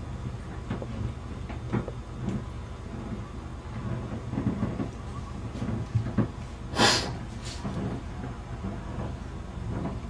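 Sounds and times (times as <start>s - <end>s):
boat engine rumbling: 0.0s - 10.0s.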